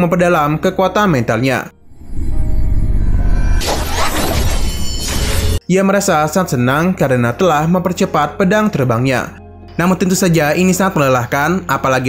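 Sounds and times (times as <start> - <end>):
background music: 0.0 - 12.0
deep rumble: 1.7 - 4.8
loud crashing burst: 3.5 - 5.6.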